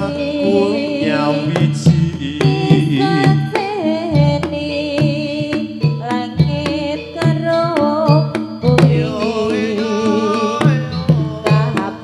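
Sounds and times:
hand drum strokes: 0.0s - 12.0s
sharp struck percussion hits: 0.0s - 12.0s
wavering melody line: 0.0s - 12.0s.

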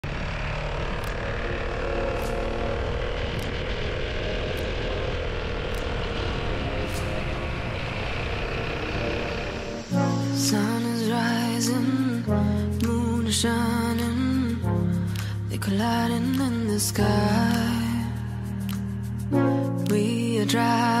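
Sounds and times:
scooter engine hum: 0.0s - 12.3s.

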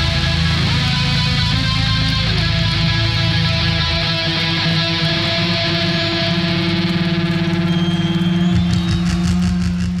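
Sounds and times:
distorted guitars and bass chord: 0.0s - 10.0s.

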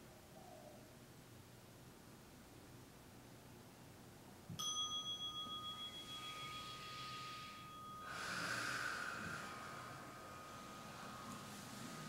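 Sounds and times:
meditation bell ringing: 4.6s - 12.0s.

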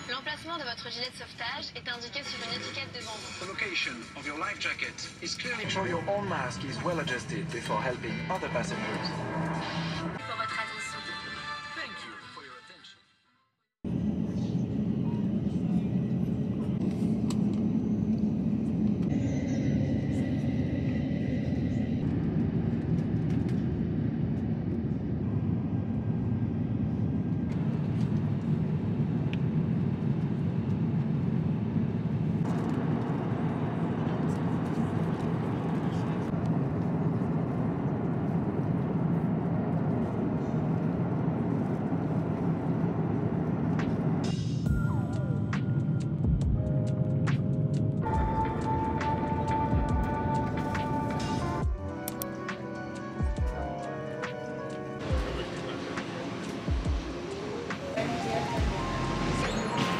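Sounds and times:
airliner engines drone: 0.0s - 12.1s, 13.8s - 59.9s.

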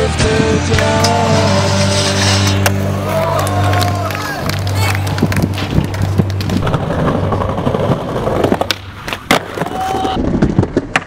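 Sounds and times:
skateboard wheels rolling on pavement: 0.8s - 11.0s.

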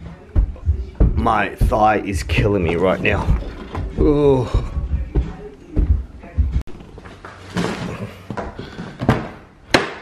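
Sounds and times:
dull knocks: 0.4s - 6.6s.

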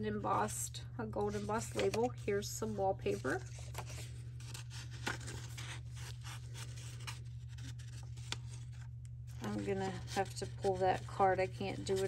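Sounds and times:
steady low hum: 0.0s - 12.0s
paper rustling and sliding: 1.2s - 12.0s.

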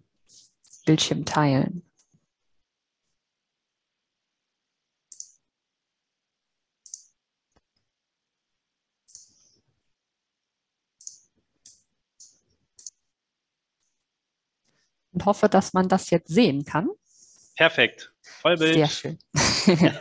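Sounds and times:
computer mouse clicks: 5.1s - 5.4s, 6.8s - 7.9s, 9.0s - 9.4s, 11.0s - 13.0s.

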